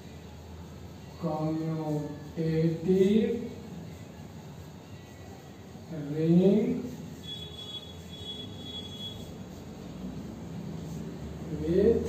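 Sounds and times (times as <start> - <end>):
chalk squeaking on blackboard: 6.8 - 9.9.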